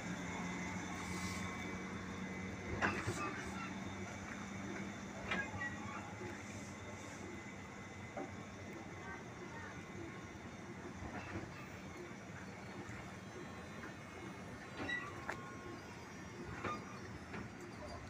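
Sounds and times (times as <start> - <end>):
electric train rolling: 0.0 - 18.0.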